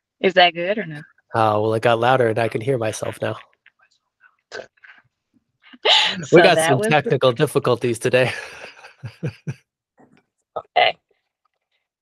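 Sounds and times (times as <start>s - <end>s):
person speaking: 0.2s - 3.4s, 5.8s - 9.6s, 10.6s - 10.9s.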